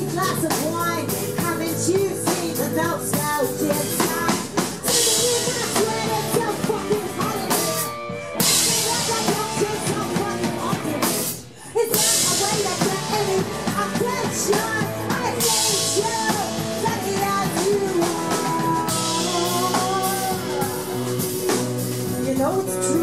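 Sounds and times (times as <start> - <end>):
acoustic and electric guitars: 0.0 - 23.0
drum kit with cymbals: 0.0 - 23.0
keyboard: 0.0 - 23.0.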